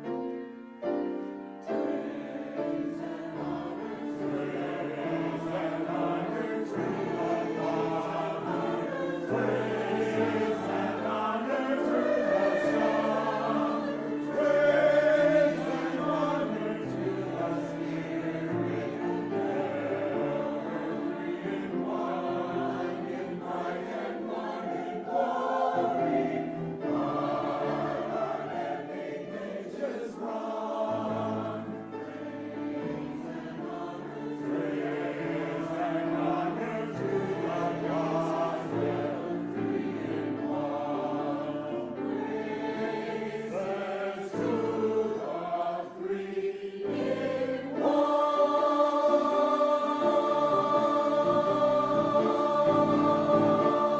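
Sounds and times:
mixed choir singing: 0.0s - 53.9s.

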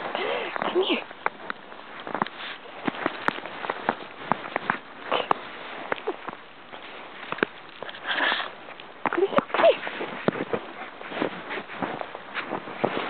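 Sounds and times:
footsteps crunching in snow: 0.0s - 13.0s.

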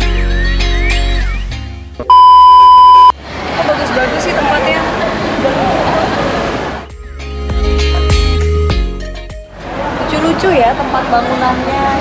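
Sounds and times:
test-tone beep: 2.1s - 3.1s
background music: 6.8s - 9.8s.

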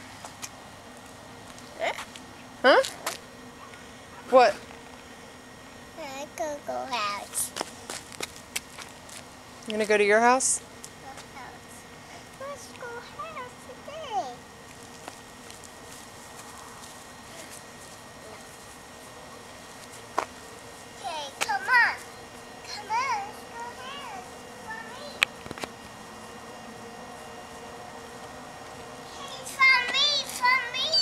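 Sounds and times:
faint outdoor background: 0.0s - 31.0s.

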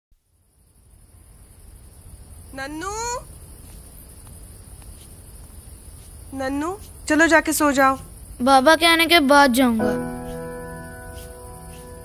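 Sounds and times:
crickets chirping: 0.2s - 12.0s.

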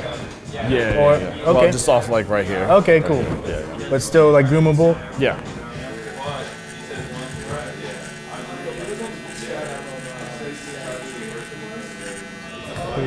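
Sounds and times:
electric hair clipper buzzing: 5.7s - 13.0s.

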